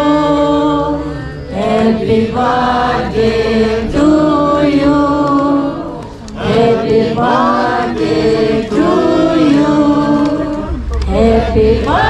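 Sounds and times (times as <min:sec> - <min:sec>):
group singing slow chant: 0:00.0 - 0:12.0.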